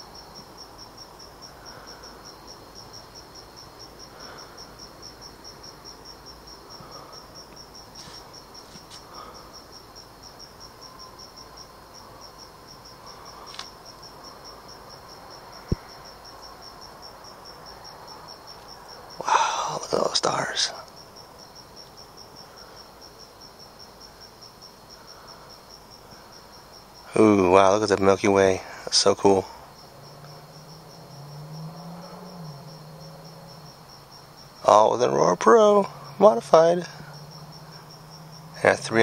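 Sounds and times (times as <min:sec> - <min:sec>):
cricket chirping: 0:00.0 - 0:39.0
faint steady insect tone: 0:00.0 - 0:39.0.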